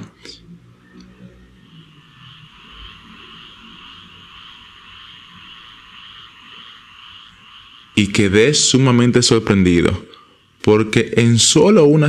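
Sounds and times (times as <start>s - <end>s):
chorus of calling animals: 0.7s - 12.0s.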